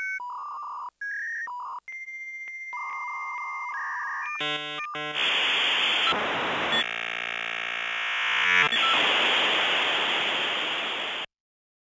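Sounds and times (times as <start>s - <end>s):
buzzy synthesizer tone: 4.4s - 9.2s
white noise hiss: 5.1s - 6.8s, 8.7s - 11.3s.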